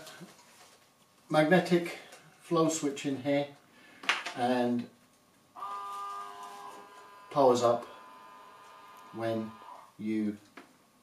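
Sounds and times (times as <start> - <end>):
electrical hum: 4.7 - 11.0.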